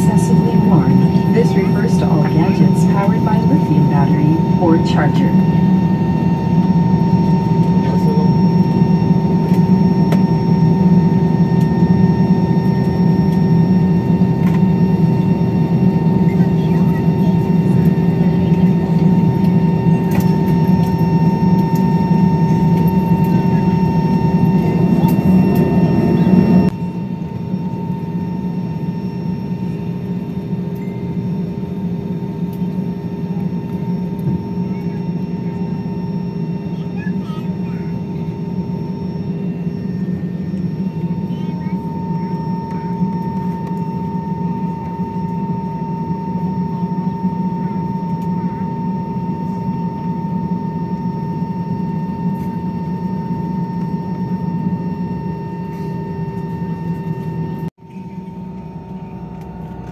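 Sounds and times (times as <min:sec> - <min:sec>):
jet engine hum in cabin: 0:00.0 - 0:59.9.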